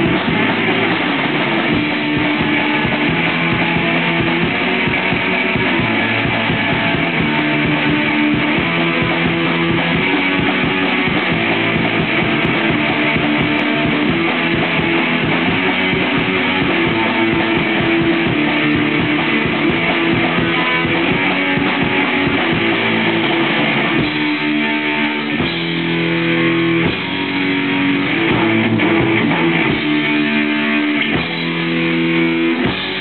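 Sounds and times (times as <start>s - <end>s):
bass guitar: 0.0s - 33.0s
drum kit: 0.0s - 33.0s
electric guitar: 0.0s - 33.0s.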